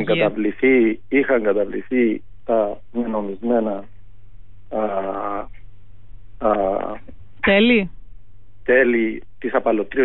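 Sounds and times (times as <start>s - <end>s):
man's hesitation sound over telephone: 0.0s - 3.8s, 4.7s - 5.5s, 6.4s - 7.1s
steady low hum: 0.0s - 10.0s.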